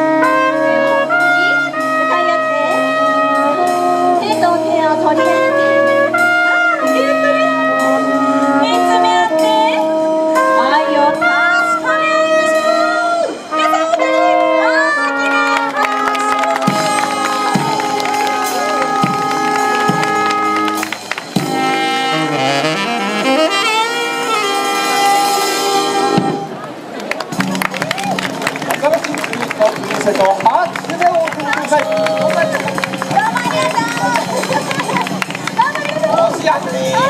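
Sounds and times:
brass band playing: 0.0 - 37.0
drum beats: 15.1 - 26.6, 27.2 - 37.0.

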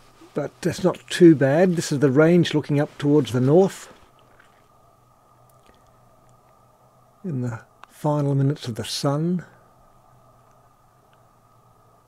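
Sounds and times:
faint low hum and hiss: 0.0 - 12.0
faint ticks: 5.4 - 6.6, 10.4 - 11.3.

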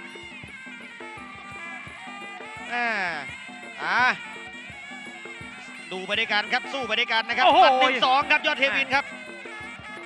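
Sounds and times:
reedy oboe melody: 0.0 - 10.0.

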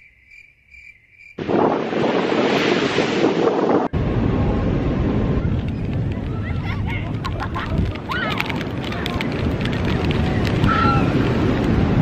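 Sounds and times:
crickets chirping: 0.0 - 1.7
deep wind rumble: 1.4 - 12.0
ocean surf: 1.4 - 12.0
wind noise on microphone: 1.4 - 12.0.

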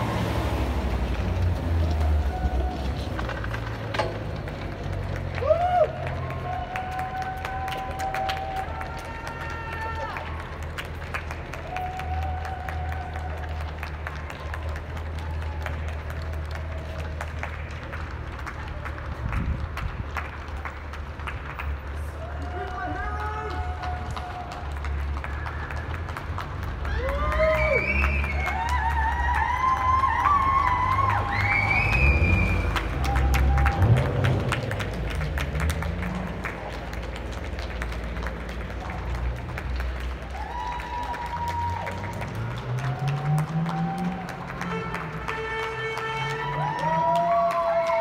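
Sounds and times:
people clapping: 0.0 - 48.0
distant shouts and whoops: 1.9 - 3.5, 5.3 - 10.6, 11.5 - 17.2, 22.0 - 34.4, 40.2 - 45.0, 45.7 - 48.0.

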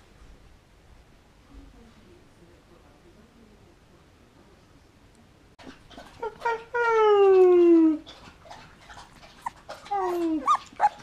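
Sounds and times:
puppy howling: 9.4 - 11.0
puppy squeaks: 9.4 - 11.0.

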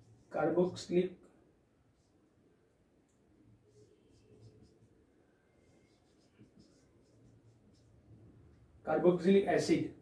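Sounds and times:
marker writing on whiteboard: 0.0 - 1.2, 1.8 - 8.3.

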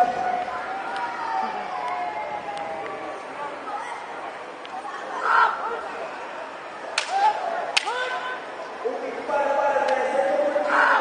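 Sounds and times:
bamboo swords striking: 6.9 - 8.3.

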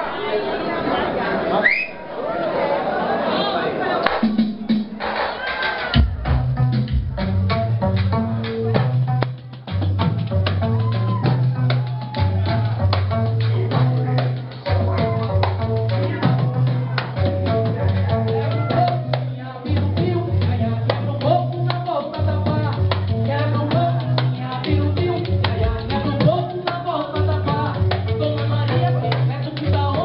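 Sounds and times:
busy drum beat: 4.2 - 19.1, 19.7 - 30.0
heavy bass line: 6.0 - 26.6
person singing or chanting: 13.5 - 30.0.

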